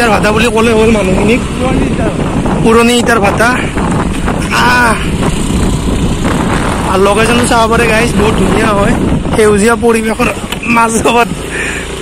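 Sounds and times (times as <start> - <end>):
wind rushing over microphone: 0.0 - 11.6
motorcycle engine rumble: 0.0 - 12.0.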